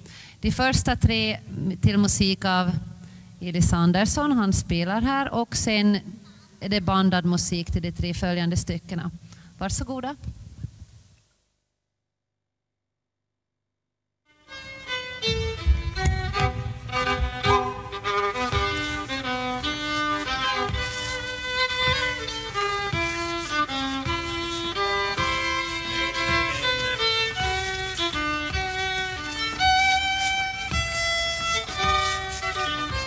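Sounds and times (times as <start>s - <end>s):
folk fiddle playing a waltz: 14.4s - 33.0s.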